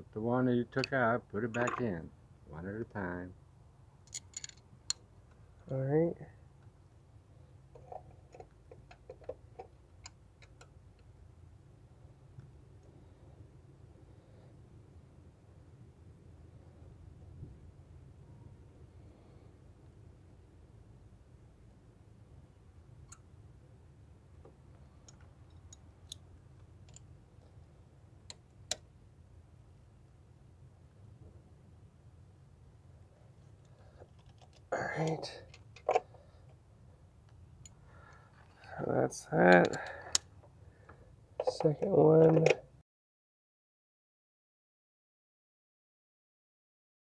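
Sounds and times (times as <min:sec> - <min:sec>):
faint low hum: 0:00.0 - 0:42.8.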